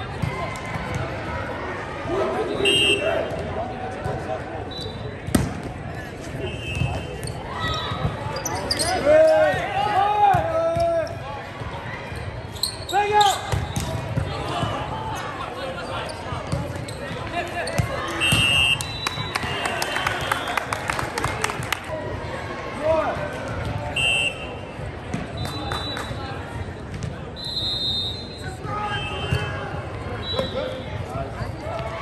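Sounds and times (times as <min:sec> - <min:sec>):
hubbub of gymnasium: 0:00.0 - 0:32.0
players shouting: 0:00.2 - 0:03.6, 0:06.4 - 0:12.1
volleyball hits: 0:05.2 - 0:05.8, 0:16.5 - 0:20.3.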